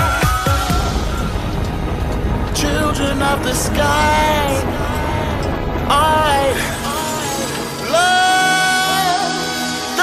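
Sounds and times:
electronic dance music: 0:00.0 - 0:09.7.

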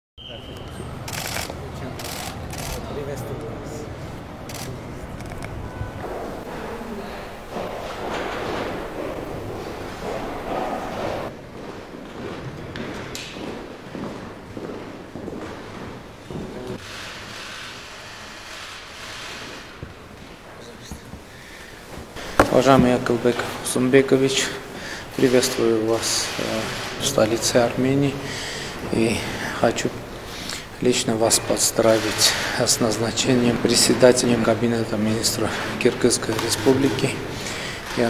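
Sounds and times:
camera shutters clicking rapidly: 0:01.0 - 0:02.8, 0:04.5 - 0:05.5
footsteps on parquet floor: 0:06.0 - 0:16.8, 0:21.9 - 0:23.5.

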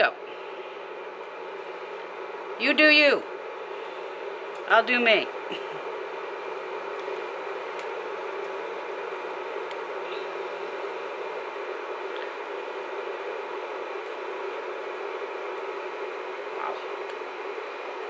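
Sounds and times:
heating plate fan whirring: 0:00.0 - 0:18.0.

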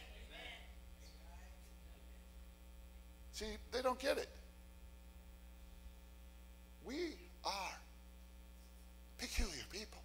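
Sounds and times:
low electrical hum: 0:00.0 - 0:10.0.

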